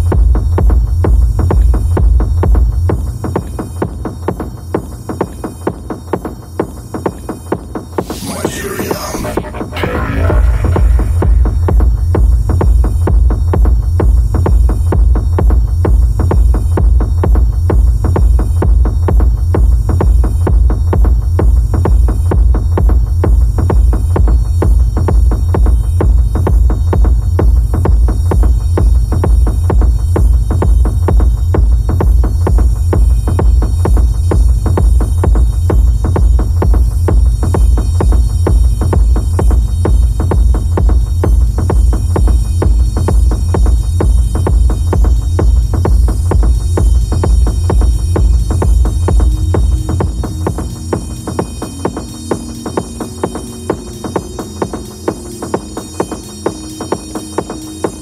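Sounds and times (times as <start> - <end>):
techno kick drum: 0.0 - 58.0
deep bass pulse: 8.0 - 16.0.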